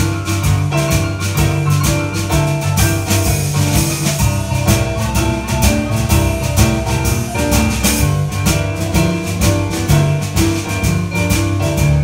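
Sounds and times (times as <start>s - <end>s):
boogie-woogie piano: 0.0s - 12.0s
drum and cymbal beat: 0.0s - 12.0s.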